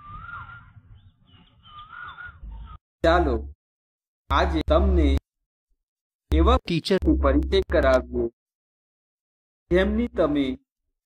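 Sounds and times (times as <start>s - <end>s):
bird calling: 0.0s - 2.8s.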